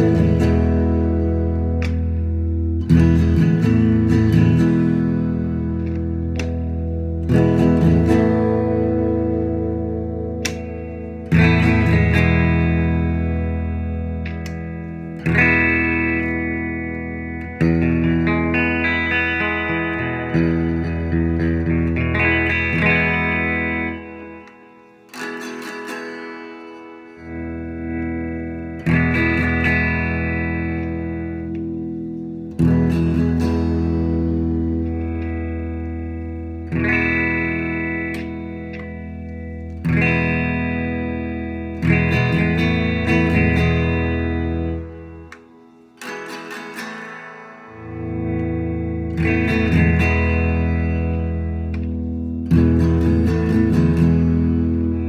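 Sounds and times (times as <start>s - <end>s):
electric guitar chords strummed: 0.0s - 55.0s.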